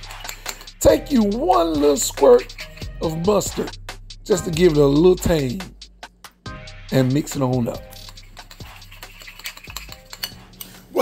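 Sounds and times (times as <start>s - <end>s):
spoon stirring sauce in a bowl: 0.0s - 0.8s, 2.4s - 3.0s, 7.7s - 10.8s
spoon clinking against bowl: 0.1s - 0.7s, 8.0s - 10.7s.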